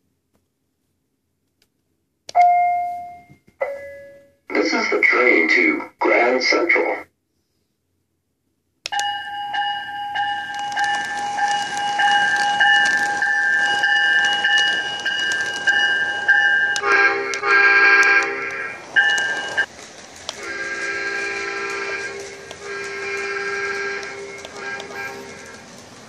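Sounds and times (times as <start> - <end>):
multi-tone train horn: 16.2 - 19.6, 20.4 - 25.7.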